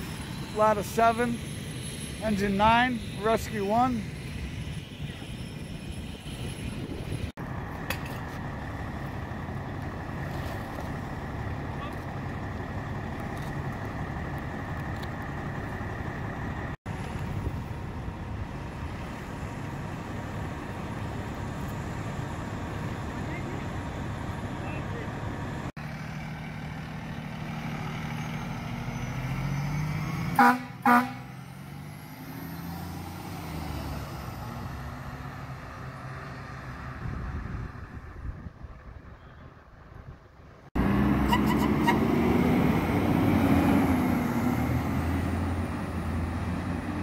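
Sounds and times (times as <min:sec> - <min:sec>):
diesel engines idling: 0:00.0 - 0:29.1
truck driving past: 0:00.0 - 0:47.0.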